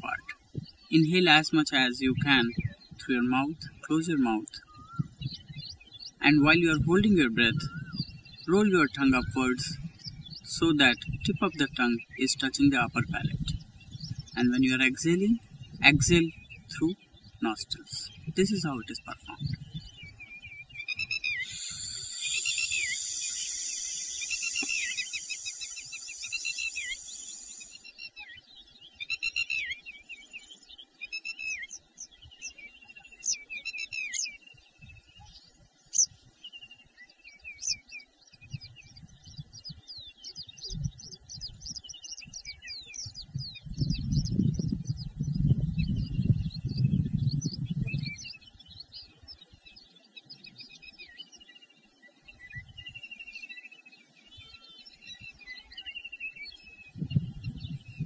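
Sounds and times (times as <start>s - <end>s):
birds chirping and trilling: 0.0s - 58.0s.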